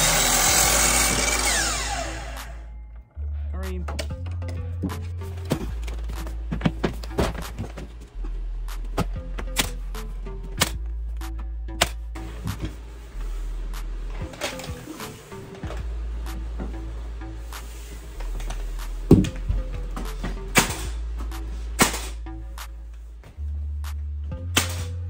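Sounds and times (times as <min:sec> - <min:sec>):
background music with bass line: 0:00.0 - 0:25.0
nail gun shots: 0:20.6 - 0:21.0, 0:21.8 - 0:22.2, 0:24.5 - 0:24.9.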